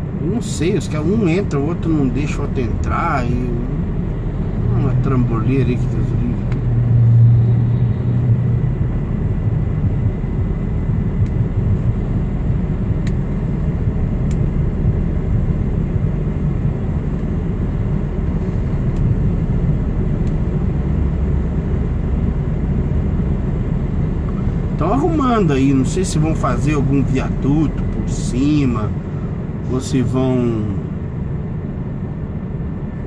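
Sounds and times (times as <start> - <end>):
truck engine rumble in cab: 0.0 - 33.0.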